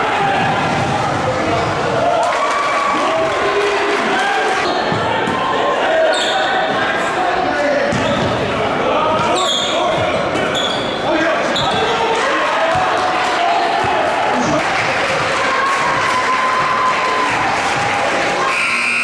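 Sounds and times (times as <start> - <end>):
din of indistinct voices: 2.8 - 16.0
sneakers squeaking: 7.9 - 8.4, 9.2 - 12.0.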